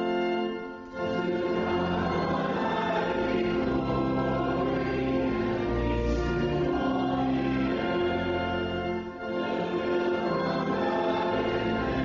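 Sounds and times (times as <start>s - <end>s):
congregation singing a hymn: 0.0s - 12.0s
sustained instrumental chords: 0.0s - 12.0s.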